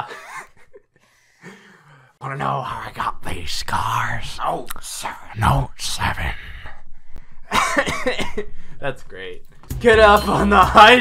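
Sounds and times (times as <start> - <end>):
person coughing laughter: 0.0 - 0.8, 7.5 - 8.6.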